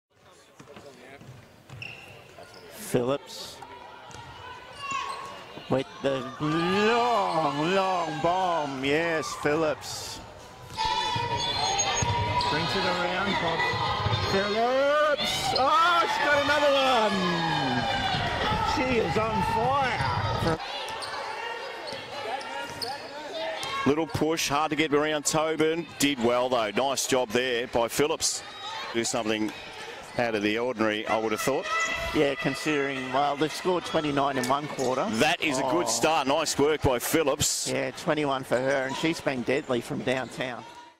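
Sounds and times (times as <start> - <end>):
voices in arena: 0.1 - 40.9
high squeak or call: 1.8 - 2.7, 10.8 - 12.7.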